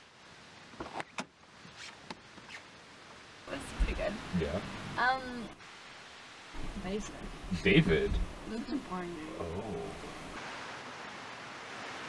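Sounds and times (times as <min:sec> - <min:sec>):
low hiss: 0:00.0 - 0:12.0.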